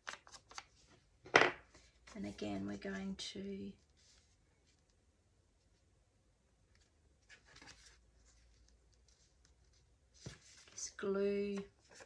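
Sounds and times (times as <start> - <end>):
paper pages rustling: 0.0 - 1.1, 6.8 - 12.0.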